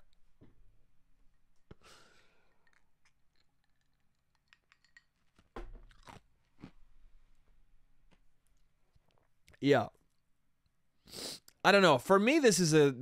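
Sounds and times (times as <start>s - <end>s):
man drinking and swallowing: 1.6s - 6.8s.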